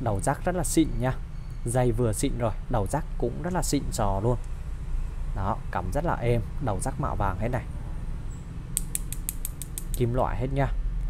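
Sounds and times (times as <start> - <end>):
metal plugs clicking together: 8.8 - 10.2.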